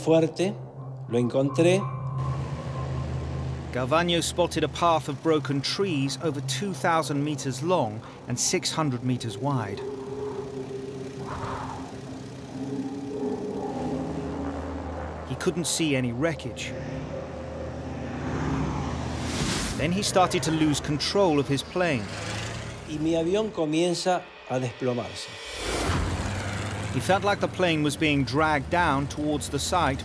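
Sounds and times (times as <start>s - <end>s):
music bed of sustained tones: 0.0s - 30.0s
propeller plane engine droning: 1.8s - 30.0s
brief whoosh: 16.4s - 20.0s.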